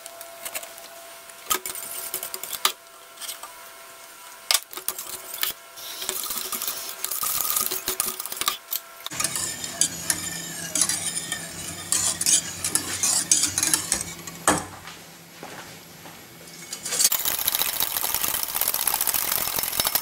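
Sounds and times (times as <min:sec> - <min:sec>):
whisk scraping a metal pan: 0:04.9 - 0:08.5, 0:09.1 - 0:14.5, 0:16.5 - 0:17.2
low steady hum: 0:09.0 - 0:17.1
whisk clinking in pan: 0:09.1 - 0:14.5.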